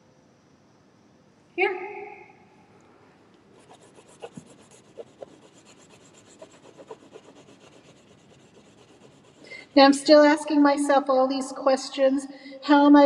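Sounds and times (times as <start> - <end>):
oil pastel scribbling on paper: 3.5 - 9.8.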